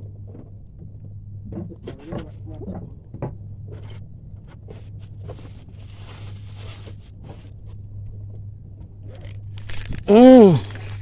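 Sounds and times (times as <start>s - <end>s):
steady low hum: 0.0s - 11.0s
camera rustling against clothing: 9.2s - 11.0s.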